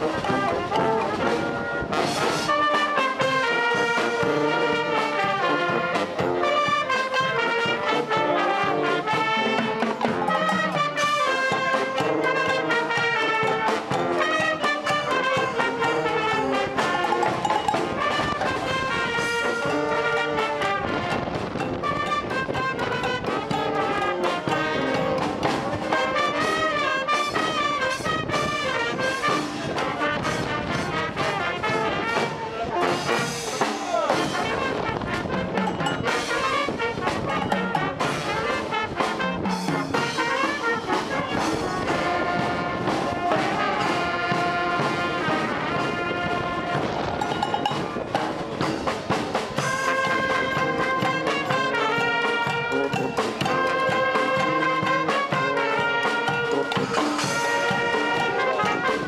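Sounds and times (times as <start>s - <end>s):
brass band playing: 0.0s - 59.0s.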